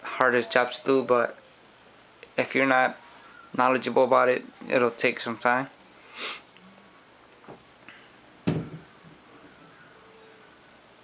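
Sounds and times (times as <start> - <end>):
person sniffing: 6.0 - 6.5.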